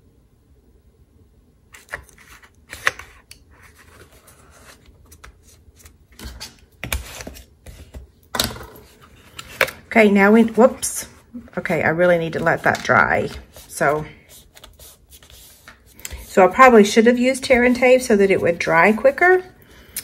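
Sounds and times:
paper rustling and rubbing: 1.7s - 8.1s, 8.8s - 19.6s.

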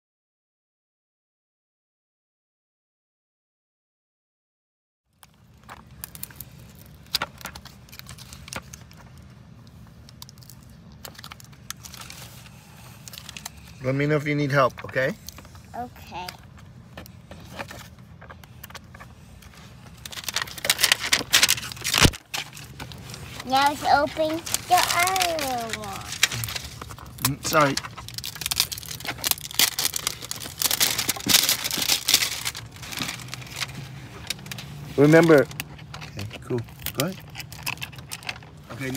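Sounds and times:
wrapper crinkling: 5.1s - 13.8s, 17.5s - 38.9s
steady low hum: 5.2s - 38.9s.

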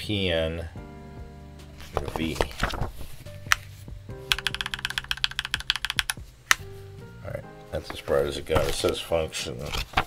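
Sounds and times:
mechanical keyboard keystrokes: 4.3s - 6.2s.

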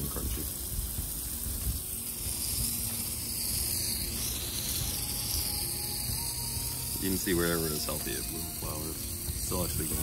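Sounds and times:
hose nozzle spraying water: 0.0s - 10.0s.

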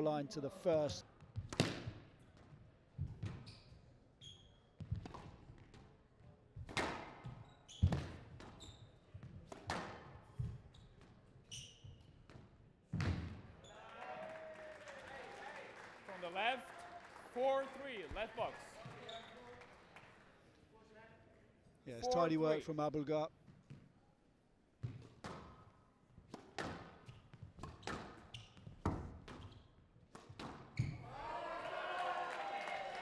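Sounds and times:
shoes squeaking on floor: 3.2s - 5.0s, 7.2s - 9.4s, 10.3s - 12.4s, 18.8s - 19.4s, 27.1s - 29.8s, 30.7s - 31.0s.

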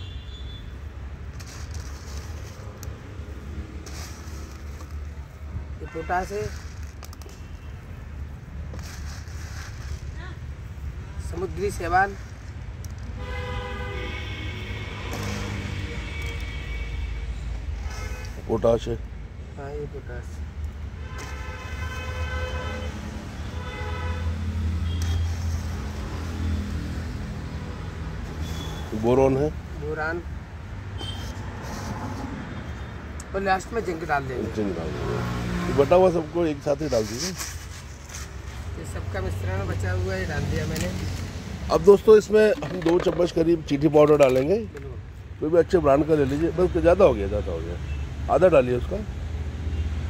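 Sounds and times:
faint rustles and scrapes: 1.3s - 5.5s, 6.1s - 7.8s, 8.5s - 13.1s, 17.6s - 18.9s, 24.9s - 26.5s, 31.0s - 32.6s, 36.6s - 38.8s
vehicle horn toots: 13.2s - 17.2s, 21.0s - 25.3s, 31.0s - 31.4s
passing vehicle rumble: 30.4s - 42.2s.

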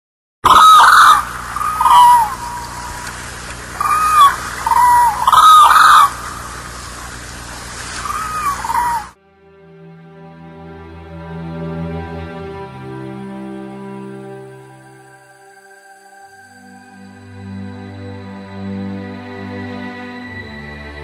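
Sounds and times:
cranes calling: 0.4s - 9.2s
steady outdoor hiss: 0.5s - 9.2s
soft music: 0.5s - 21.0s.

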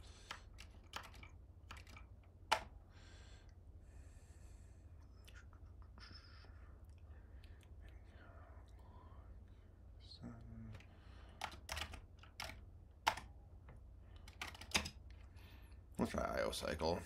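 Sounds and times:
steady low hum: 0.0s - 17.0s
computer keyboard key clicks: 0.2s - 2.7s, 10.7s - 13.3s, 14.2s - 15.0s.

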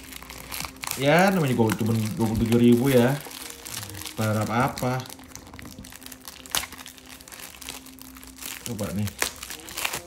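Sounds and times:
plastic wrap crinkling: 0.0s - 10.0s.

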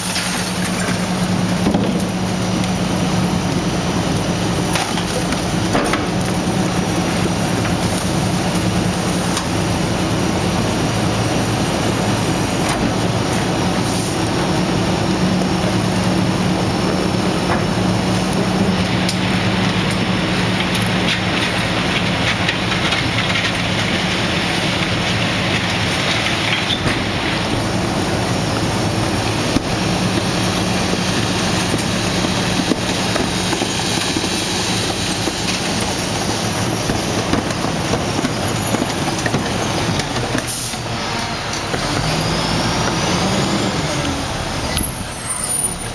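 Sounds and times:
garbage truck hydraulic packer: 0.0s - 45.9s
truck engine humming: 0.0s - 45.9s.

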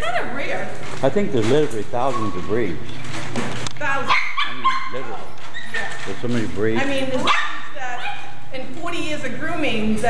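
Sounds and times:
dogs barking: 2.0s - 2.8s, 3.9s - 8.5s
dogs whining: 2.0s - 2.8s, 3.8s - 8.5s.

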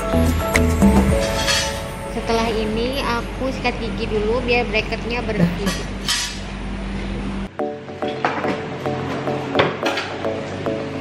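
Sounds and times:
background music with held tones: 0.0s - 4.8s, 7.5s - 11.0s.

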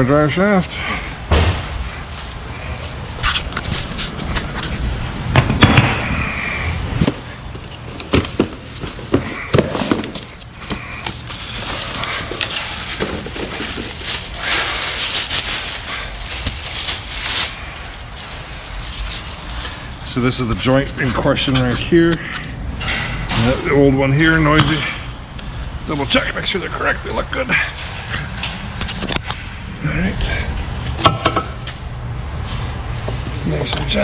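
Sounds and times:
cardboard and plastic wrap rustling: 1.8s - 4.8s, 6.9s - 21.8s
parts knocking and clattering: 3.2s - 6.2s, 7.0s - 14.2s, 30.9s - 31.8s.

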